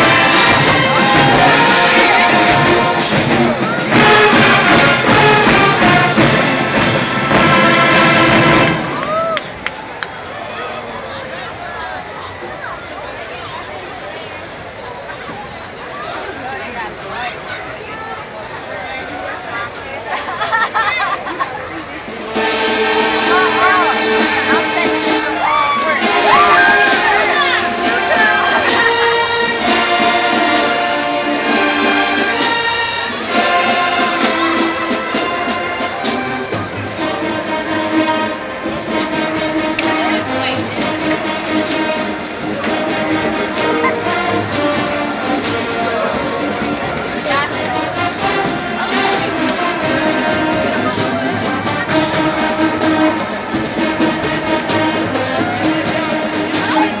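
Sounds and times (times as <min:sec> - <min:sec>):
marching band playing: 0:00.0 - 0:09.6, 0:20.2 - 0:57.0
people's voices: 0:00.0 - 0:57.0.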